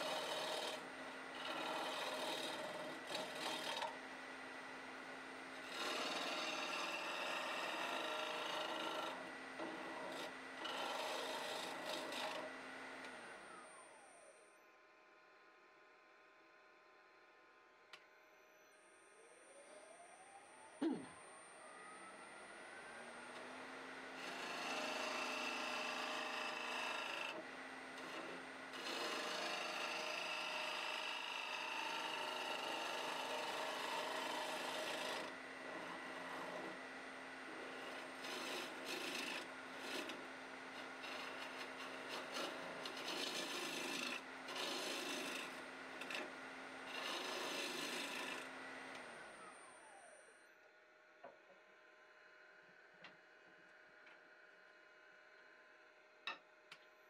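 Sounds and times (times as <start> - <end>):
gouge scraping spinning wood: 0.0 - 4.0, 5.6 - 13.3, 24.2 - 36.8, 37.5 - 48.5
lathe motor whine and hum: 0.0 - 56.2.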